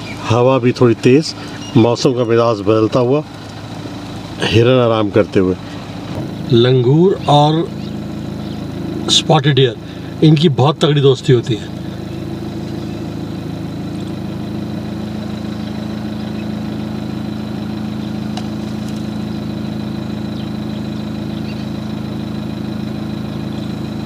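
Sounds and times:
vehicle engine idling: 0.0s - 24.0s.

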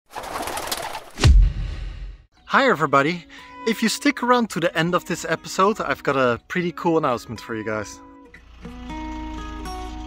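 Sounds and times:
deep boom: 1.2s - 2.3s.

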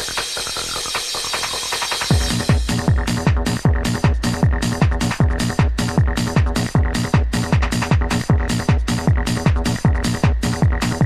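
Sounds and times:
clicking electronic percussion: 0.0s - 11.0s
deep kick drum beat: 0.0s - 11.0s.

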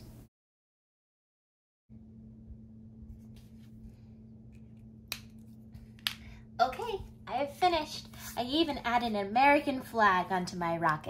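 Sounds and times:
woman speaking: 6.6s - 11.0s.

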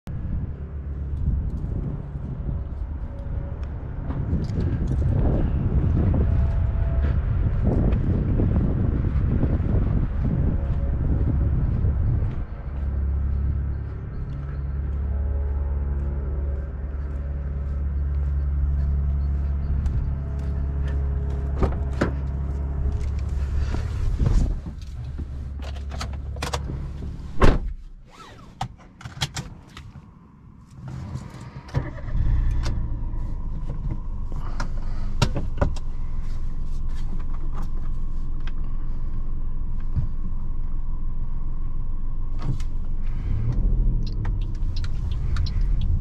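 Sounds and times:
steady low rumble: 0.0s - 28.1s, 29.5s - 46.0s.

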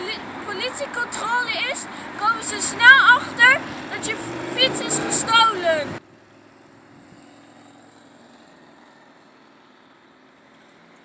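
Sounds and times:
low hum of traffic: 0.0s - 11.0s
motorcycle passing: 0.0s - 11.0s.

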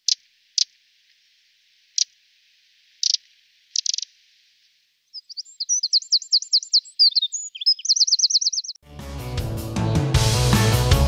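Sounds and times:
wren song with rapid trill: 0.0s - 0.9s, 2.9s - 4.2s, 5.0s - 8.8s
wren calls: 0.0s - 1.2s, 1.8s - 8.8s.

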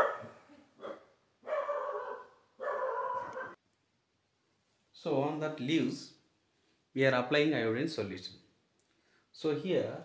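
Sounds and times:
dog barking: 0.0s - 3.6s.

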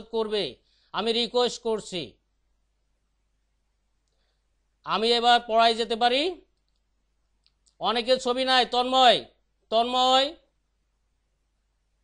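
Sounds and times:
person speaking through video call: 0.0s - 2.4s, 4.8s - 10.6s
faint clicks: 4.0s - 4.3s, 6.5s - 7.8s.

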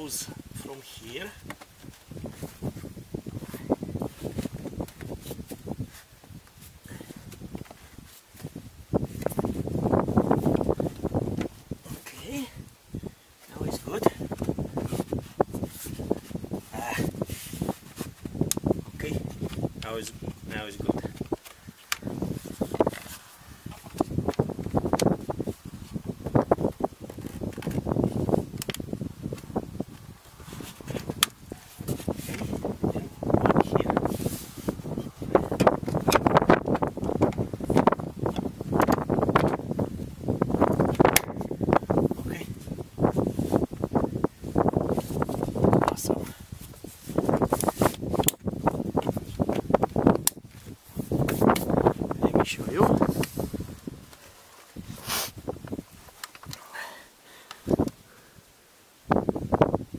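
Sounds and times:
plastic rustling and knocking: 1.4s - 2.9s.

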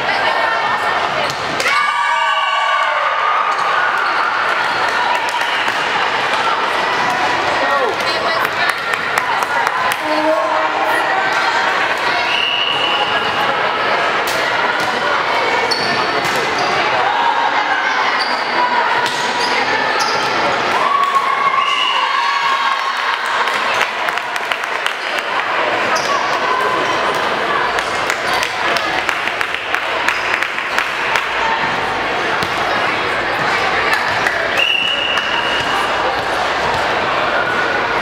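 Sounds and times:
voices in large hall: 0.0s - 38.0s.

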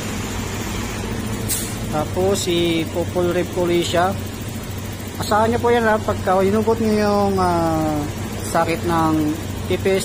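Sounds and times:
scooter engine idling: 0.0s - 10.0s
brief hiss: 1.5s - 1.8s.

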